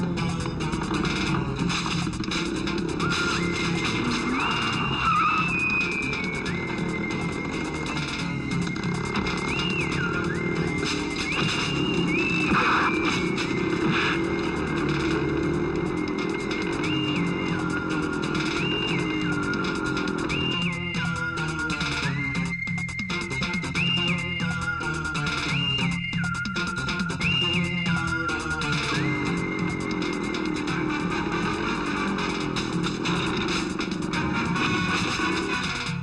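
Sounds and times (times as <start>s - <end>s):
action film music: 0.0s - 36.0s
motorcycle engine: 0.0s - 36.0s
tires skidding: 0.0s - 36.0s.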